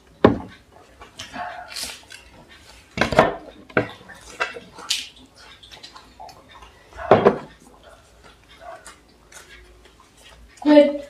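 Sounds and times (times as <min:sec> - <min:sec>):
tableware clinking and knocking: 0:07.0 - 0:07.5.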